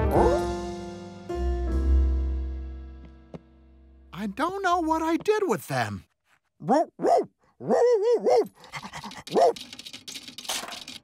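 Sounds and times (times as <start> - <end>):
cartoon dog whining and yipping: 6.6 - 9.6
dog sniffing and snuffling: 8.5 - 9.9.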